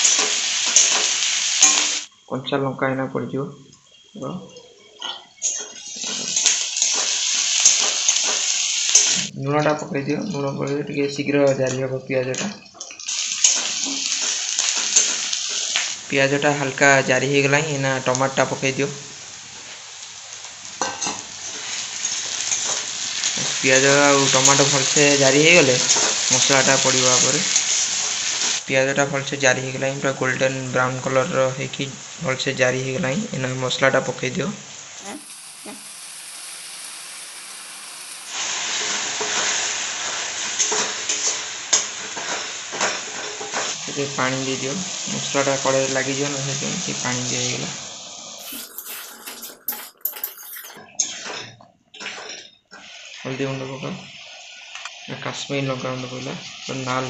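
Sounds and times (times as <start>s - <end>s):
onions sizzling in hot oil: 0.0s - 2.2s, 3.8s - 9.3s, 12.3s - 57.0s
steel ladle scraping pan: 48.4s - 52.4s.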